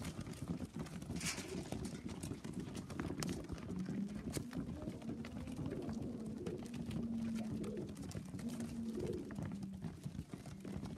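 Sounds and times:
pigeons pecking grain: 0:00.0 - 0:10.9
pigeons cooing: 0:00.1 - 0:10.9.

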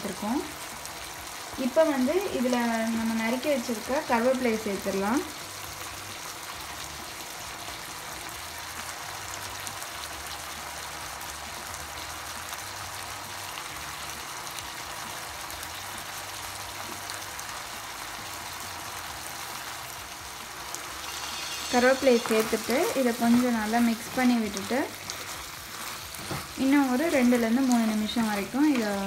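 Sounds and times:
chicken sizzling in oil: 0:00.0 - 0:29.0.

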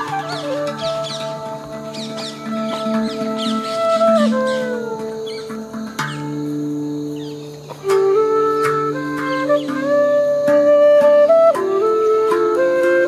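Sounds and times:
birds chirping: 0:00.0 - 0:08.1
flute sliding melody: 0:00.0 - 0:13.0.

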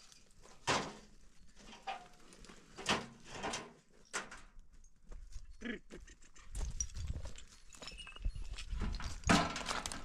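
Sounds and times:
hooves shuffling on stony ground: 0:00.0 - 0:10.0.

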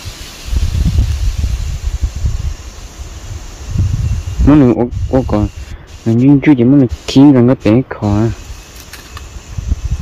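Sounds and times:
wind buffeting microphone: 0:00.0 - 0:06.0, 0:08.3 - 0:10.0
leaves rustling: 0:00.0 - 0:10.0.

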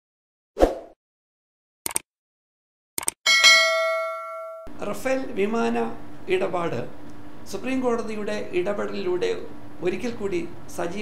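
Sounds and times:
notification bell ding: 0:03.3 - 0:04.7.

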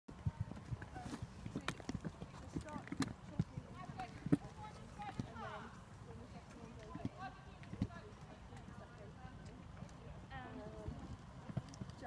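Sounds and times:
hoofbeats on sand: 0:00.1 - 0:05.7.

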